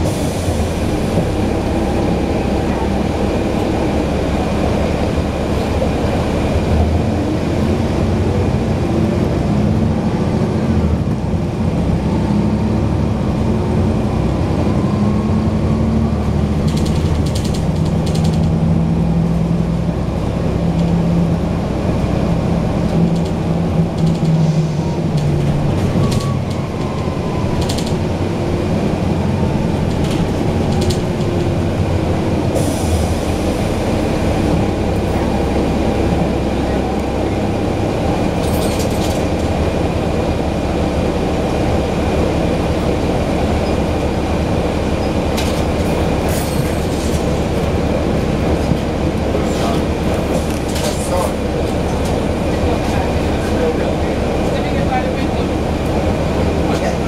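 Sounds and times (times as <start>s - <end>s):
bus diesel engine rumbling: 0.0s - 57.0s.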